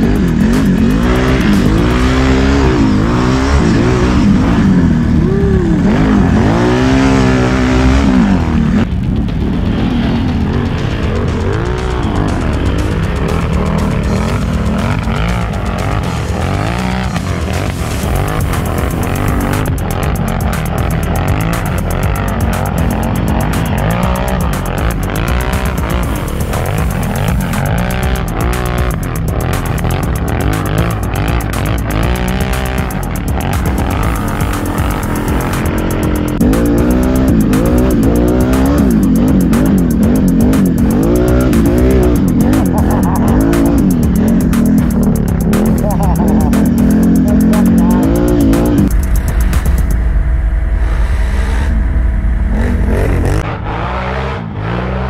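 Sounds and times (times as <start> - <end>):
atv engines revving: 0.0 - 49.8, 52.5 - 55.0.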